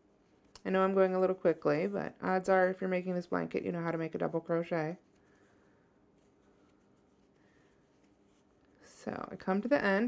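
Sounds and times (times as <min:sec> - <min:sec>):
yarn rubbing over crochet hook: 0:06.2 - 0:10.0.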